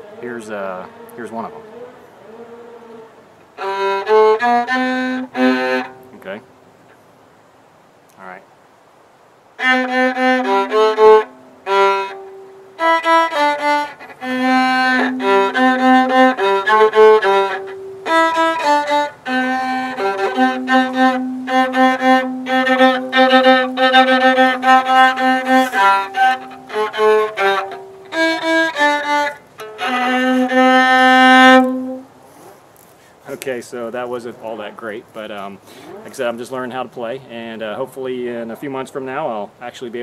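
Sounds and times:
viola playing simple tune: 0:00.0 - 0:06.5, 0:09.6 - 0:32.6.

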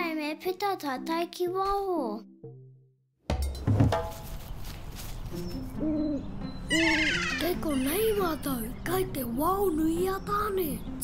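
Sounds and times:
high falling chirps: 0:05.4 - 0:08.2
owl hooting: 0:05.4 - 0:08.3.

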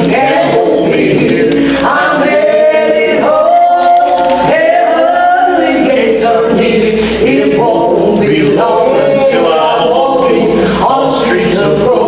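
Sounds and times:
women singing gospel: 0:00.0 - 0:12.0.

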